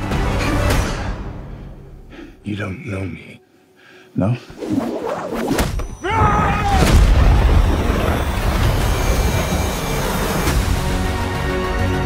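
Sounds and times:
trailer score: 0.0s - 3.5s, 4.4s - 12.0s
dense rumble of sound effects: 7.0s - 11.4s.

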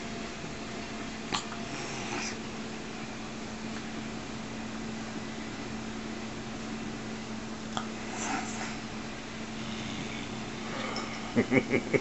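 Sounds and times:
steady low hum: 0.0s - 12.0s
cat snorting: 1.3s - 2.4s, 7.8s - 8.8s, 9.6s - 10.8s.

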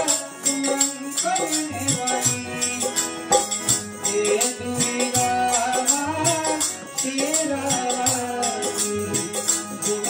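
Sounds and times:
harmonium chords: 0.0s - 10.0s
man singing: 0.0s - 10.0s
rattling hand percussion: 0.0s - 10.0s.

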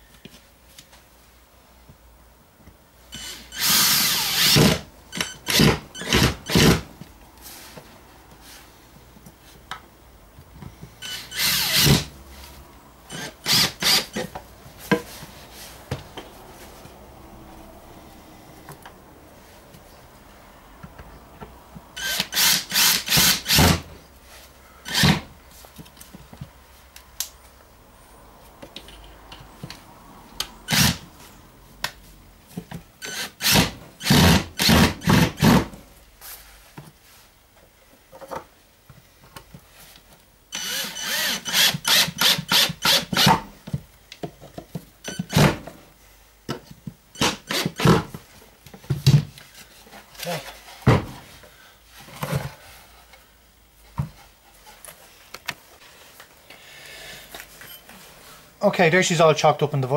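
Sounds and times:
cordless drill driving screws: 3.2s - 6.8s, 11.0s - 12.1s, 13.1s - 14.3s, 22.0s - 23.8s, 24.9s - 25.3s, 30.7s - 31.0s, 33.0s - 35.6s, 40.5s - 43.4s.

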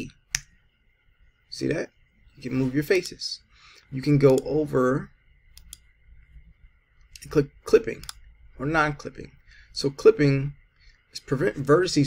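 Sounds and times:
faint low hum: 0.0s - 12.0s
computer mouse clicks: 4.2s - 4.5s, 5.5s - 5.9s, 8.0s - 8.3s.

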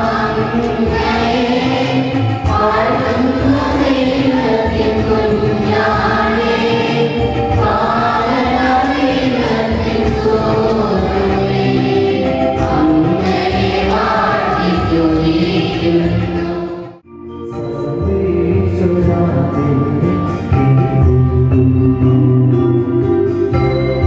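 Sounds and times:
church choir singing a hymn: 0.0s - 17.0s
musical accompaniment: 0.0s - 24.0s.

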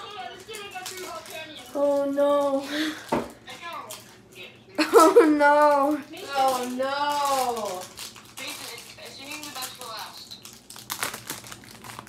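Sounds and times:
foil wrapper crinkling: 0.0s - 12.0s
foil wrapper ripping: 0.0s - 12.0s.

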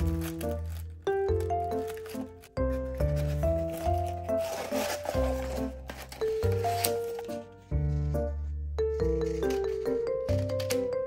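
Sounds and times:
soft background music: 0.0s - 11.0s.

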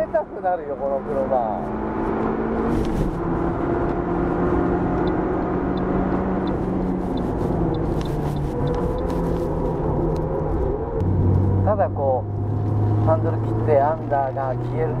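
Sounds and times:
car engine pulling: 0.0s - 15.0s
tyre and road noise: 0.0s - 15.0s.

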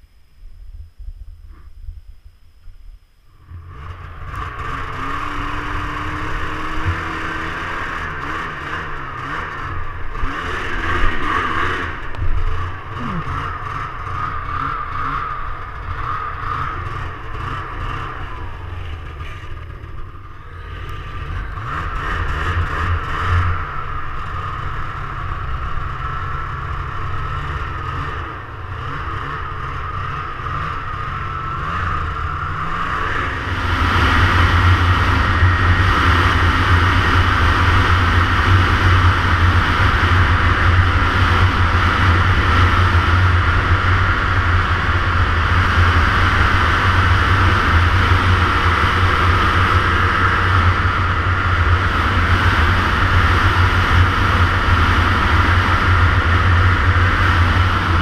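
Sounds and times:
wind rumble on microphone: 0.0s - 8.3s
snowmobile engine running: 3.3s - 58.0s
clatter: 3.4s - 58.0s.

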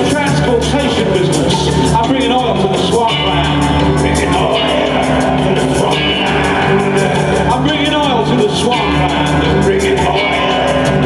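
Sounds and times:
live band playing a groove: 0.0s - 11.0s.

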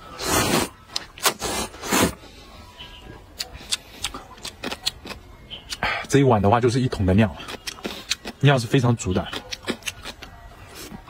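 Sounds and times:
man slurping noodles: 0.2s - 2.2s.

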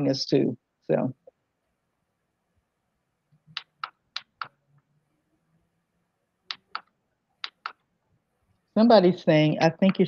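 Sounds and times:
computer keyboard clicks: 6.5s - 7.8s.

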